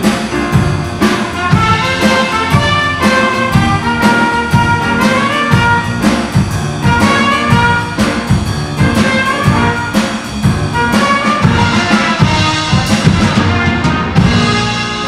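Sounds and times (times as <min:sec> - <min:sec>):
drum kit steady beat: 0:00.0 - 0:15.0
electric bass: 0:00.0 - 0:15.0
grand piano: 0:00.0 - 0:15.0
trumpet and flute melody: 0:01.0 - 0:15.0.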